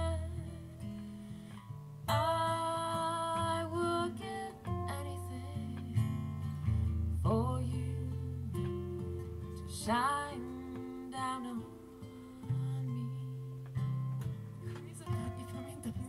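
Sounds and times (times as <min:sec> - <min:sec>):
acoustic guitars strumming: 0:00.0 - 0:16.0
woman singing long notes: 0:02.1 - 0:06.2, 0:14.7 - 0:16.0.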